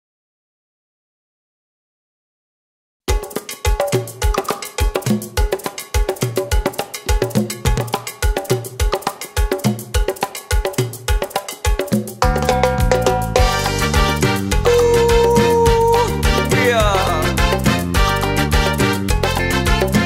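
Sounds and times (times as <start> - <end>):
hand percussion strokes: 3.1 - 18.0
latin dance music: 3.1 - 20.0.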